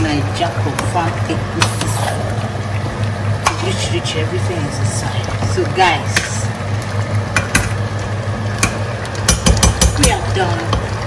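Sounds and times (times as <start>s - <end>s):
metal spoon knocking against pot: 8.6s - 10.2s.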